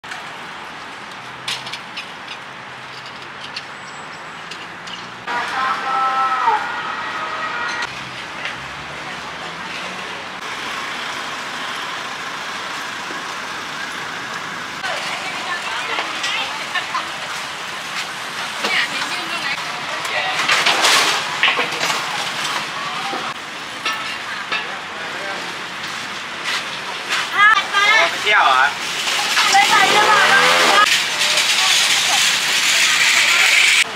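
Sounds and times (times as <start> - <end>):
street noise hiss: 0.0 - 33.9
vehicle moving slowly over pavement: 0.0 - 33.9
people talking: 5.3 - 6.8, 14.8 - 17.4, 18.6 - 20.5, 27.1 - 33.9.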